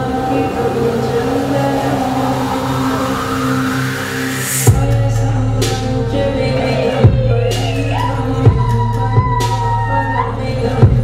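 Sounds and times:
sustained low drone: 0.0s - 8.9s
noise sweep rising in pitch: 0.0s - 10.2s.

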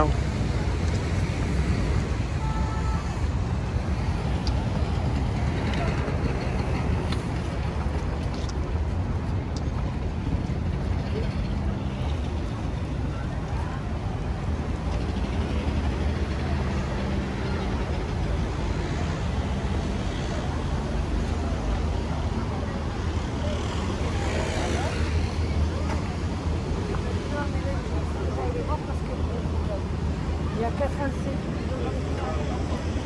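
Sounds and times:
people talking walking past: 0.0s - 33.0s
road traffic rumble: 0.0s - 33.0s.

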